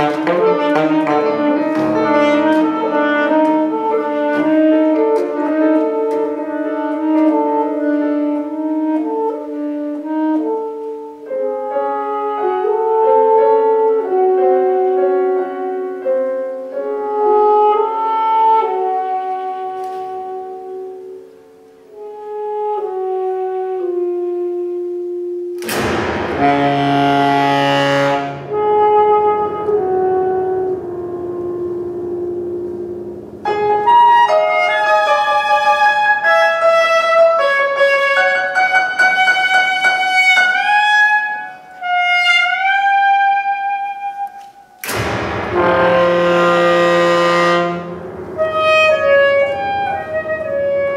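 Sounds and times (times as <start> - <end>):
grand piano: 0.0 - 50.9
saxophone: 0.0 - 50.9.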